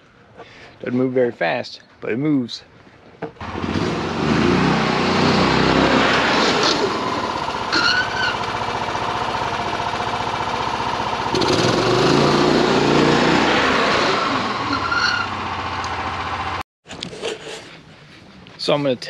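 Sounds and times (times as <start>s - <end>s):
golf cart engine driving by: 3.4s - 16.6s
short squeaks: 7.7s - 8.5s, 14.6s - 15.4s.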